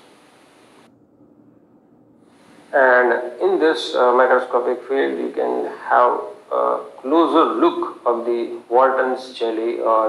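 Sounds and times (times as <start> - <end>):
faint steady background hiss: 0.0 - 10.0.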